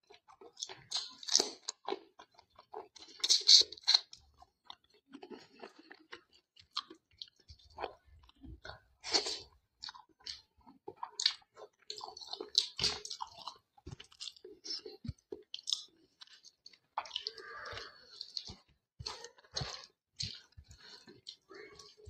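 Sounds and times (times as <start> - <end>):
chewing and wet mouth sounds: 0.0 - 22.0.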